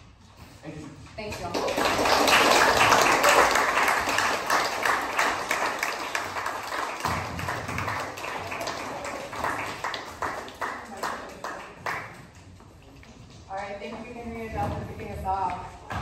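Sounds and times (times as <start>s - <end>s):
audience applauding: 1.4s - 12.4s.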